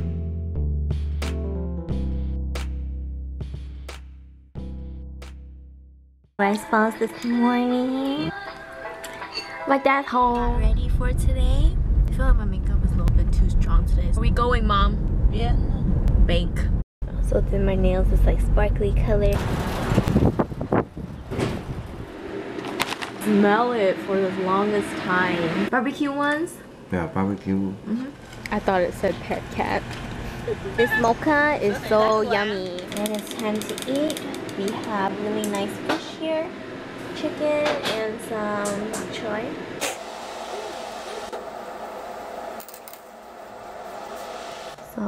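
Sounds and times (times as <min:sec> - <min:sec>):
indoor room hum: 0:21.6 - 0:45.0.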